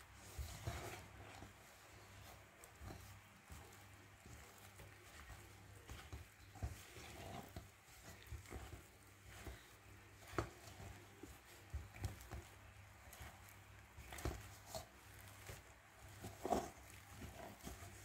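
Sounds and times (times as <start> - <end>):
wooden spoon scraping metal bowl: 0.0 - 18.0.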